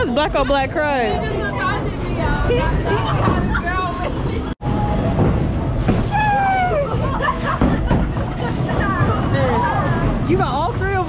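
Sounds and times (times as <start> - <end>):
bowling balls rolling: 0.1 - 11.0
bowling pins clattering: 7.0 - 11.0.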